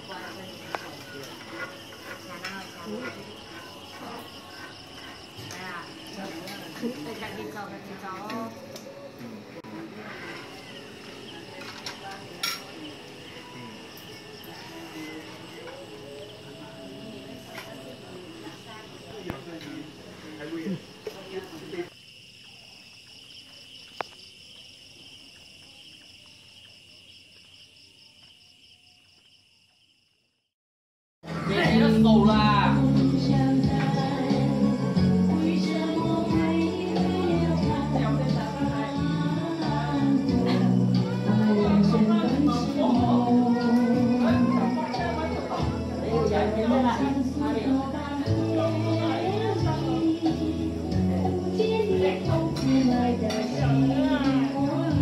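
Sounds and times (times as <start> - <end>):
faint voices: 0.0 - 23.5, 31.2 - 55.0
insects chirping: 0.0 - 30.5, 31.2 - 55.0.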